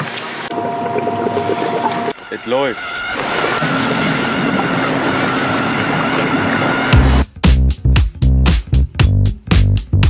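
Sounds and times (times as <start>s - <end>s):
steady rushing noise: 0.4s - 7.2s
music with strong beat: 6.9s - 10.0s.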